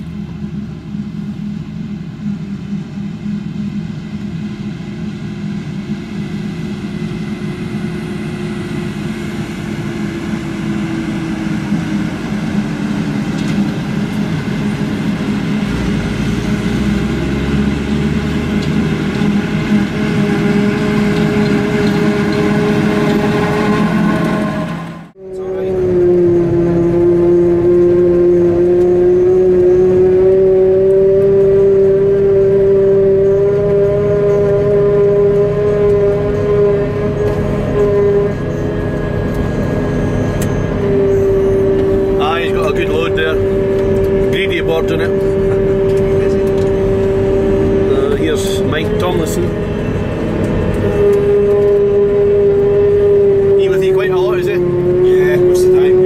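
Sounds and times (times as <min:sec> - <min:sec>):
forage harvester running: 0:00.0 - 0:56.0
steady machine whine: 0:00.0 - 0:56.0.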